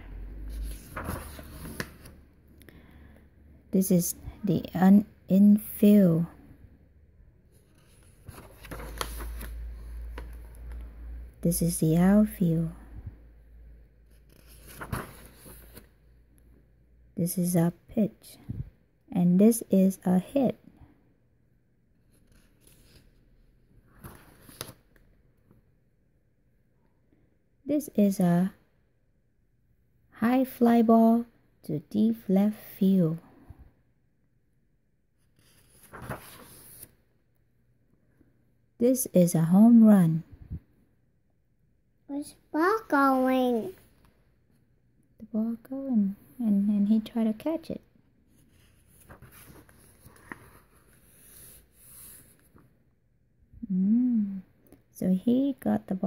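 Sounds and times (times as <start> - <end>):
book page turning: 0.5 - 2.2, 7.6 - 10.4, 14.2 - 15.9, 24.0 - 24.8, 35.3 - 36.9, 48.4 - 52.7.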